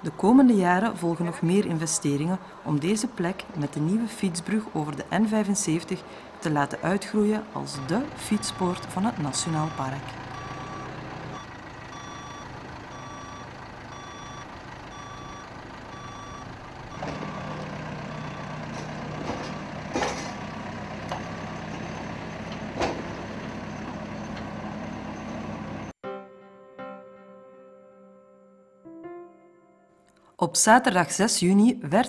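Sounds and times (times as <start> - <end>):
diesel engine running: 0.0 - 26.0
reversing alarm beeping: 7.3 - 19.8.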